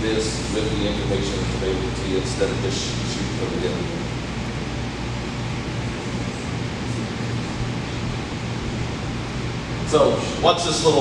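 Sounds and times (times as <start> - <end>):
constant low hum: 0.0 - 11.0
room hiss: 0.0 - 11.0.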